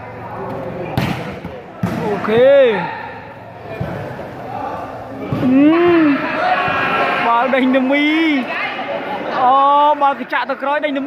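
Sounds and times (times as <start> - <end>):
volleyball slaps: 0.5 - 2.5.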